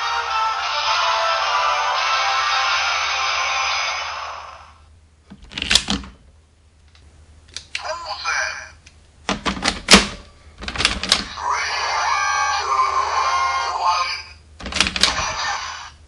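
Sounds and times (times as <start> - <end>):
toy electronic voice and effects: 7.8 - 8.8, 11.2 - 14.4, 15.0 - 16.0.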